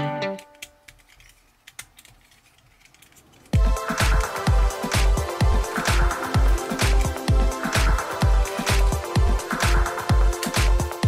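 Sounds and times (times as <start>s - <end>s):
plastic toy parts clicking: 0.4s - 3.6s.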